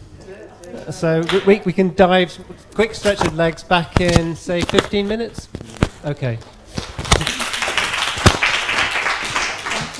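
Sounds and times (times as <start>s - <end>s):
small audience clapping: 6.8s - 9.9s
loud single claps: 7.0s - 9.9s.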